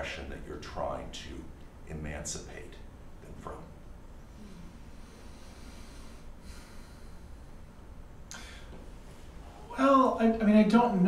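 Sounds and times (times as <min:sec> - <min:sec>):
steady low hum: 0:00.0 - 0:11.0
short breath: 0:04.4 - 0:07.6.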